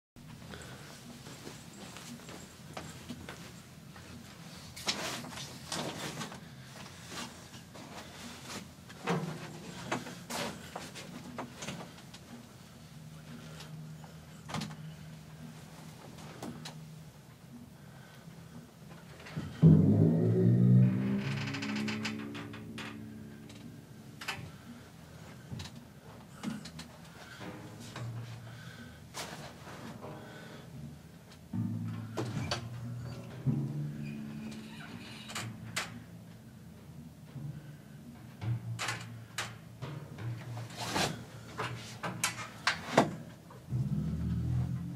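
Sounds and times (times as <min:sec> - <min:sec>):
loud timpani stroke with pitch bend: 0:19.5 - 0:24.3, 0:31.6 - 0:36.1, 0:43.7 - 0:44.9
timpani notes ringing: 0:19.5 - 0:24.5, 0:31.6 - 0:36.3.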